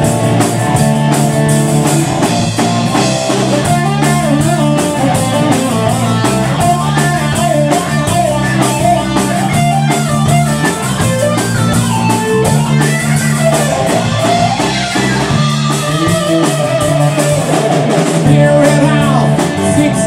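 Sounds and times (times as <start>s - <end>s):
bass guitar: 0.0s - 20.0s
drum kit beat: 0.0s - 20.0s
electric guitar lead line: 0.0s - 20.0s.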